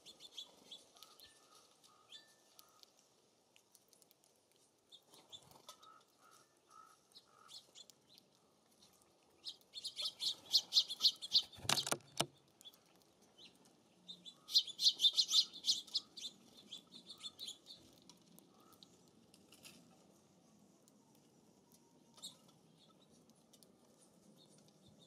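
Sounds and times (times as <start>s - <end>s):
songbird rapid chirping: 0.0s - 3.3s, 4.8s - 19.2s, 20.0s - 25.0s.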